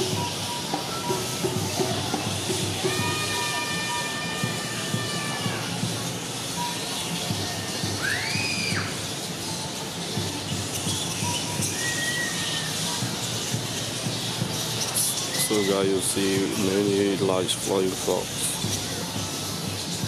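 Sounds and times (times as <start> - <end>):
flying foxes chattering: 0.0 - 20.0.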